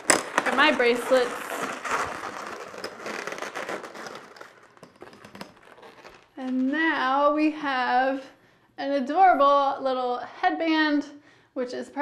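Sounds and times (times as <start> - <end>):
balloons creaking and squeaking: 0.0 - 7.2.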